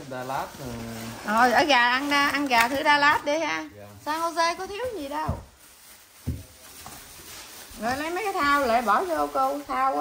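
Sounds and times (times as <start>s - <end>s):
paper bags rustling: 0.0s - 10.0s.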